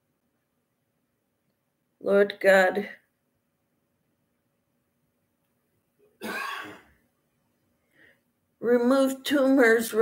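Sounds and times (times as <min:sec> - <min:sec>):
woman clearing her throat: 0:06.2 - 0:06.9.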